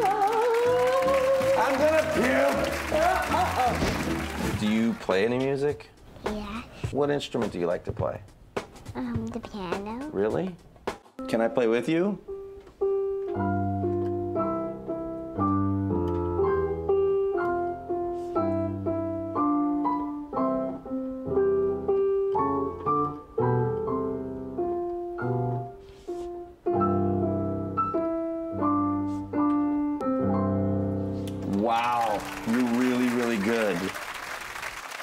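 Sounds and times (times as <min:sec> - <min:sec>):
digital piano four-hands: 0:11.2 - 0:33.4.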